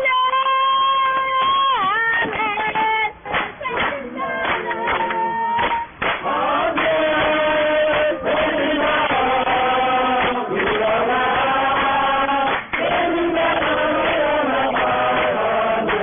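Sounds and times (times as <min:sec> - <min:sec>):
congregation singing a chant: 0:04.0 - 0:16.0.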